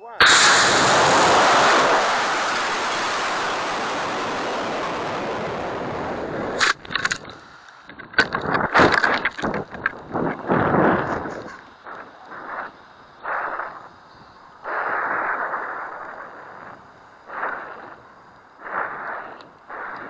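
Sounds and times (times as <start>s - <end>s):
rocket motors rushing roar: 0.1s - 20.0s.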